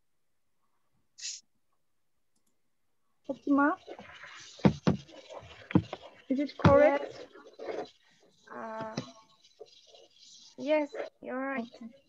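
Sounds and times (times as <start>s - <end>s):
background noise: 0.0s - 12.0s
short hiss: 1.2s - 1.4s
person speaking: 3.3s - 7.9s, 8.5s - 9.2s, 10.5s - 12.0s.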